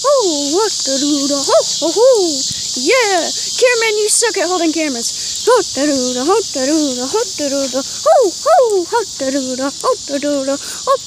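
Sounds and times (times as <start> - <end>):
crickets chirping: 0.0 - 11.0
person singing wordless syllables: 0.0 - 11.0.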